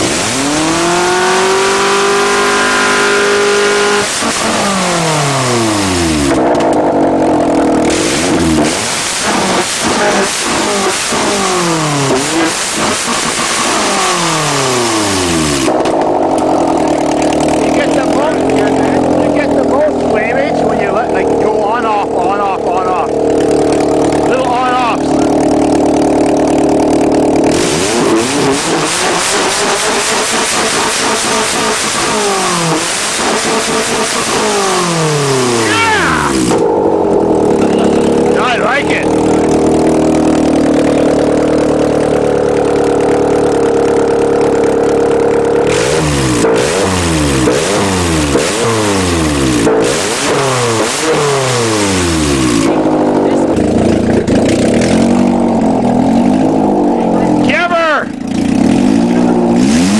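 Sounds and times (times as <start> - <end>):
car engine idling and revving: 0.0 - 59.9
loud raspy exhaust note: 0.0 - 59.9.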